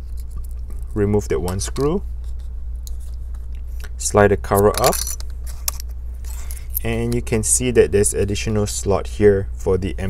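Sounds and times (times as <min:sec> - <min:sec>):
steady low hum: 0:00.0 - 0:10.0
light metallic clicks and rustles: 0:04.6 - 0:06.9.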